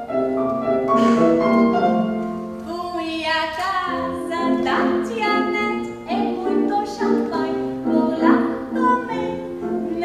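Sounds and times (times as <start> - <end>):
woman singing: 2.6 - 10.0.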